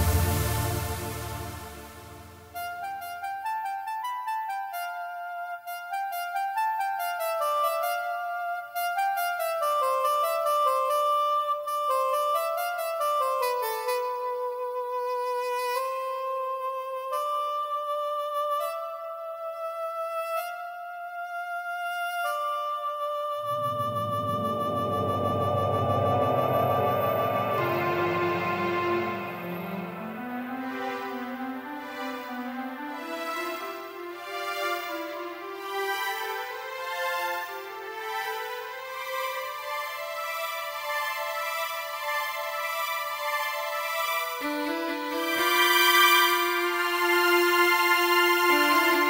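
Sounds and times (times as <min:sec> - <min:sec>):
orchestral music: 0:00.0 - 0:03.0, 0:23.1 - 0:34.2.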